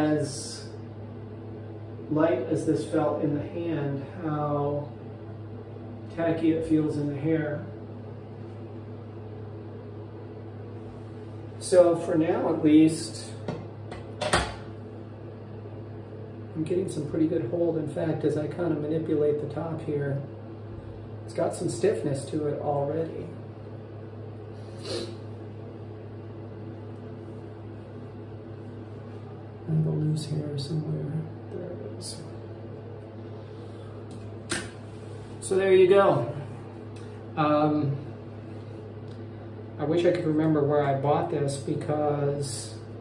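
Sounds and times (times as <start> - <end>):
low hum with faint hiss: 0.0 - 43.0.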